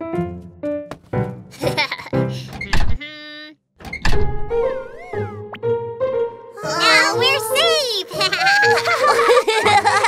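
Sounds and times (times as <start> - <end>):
children's cartoon music: 4.5 - 10.0.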